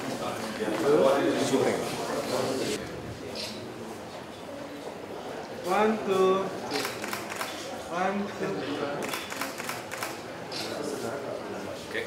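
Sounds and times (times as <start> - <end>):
camera shutters clicking: 6.7 - 7.6, 9.0 - 10.8.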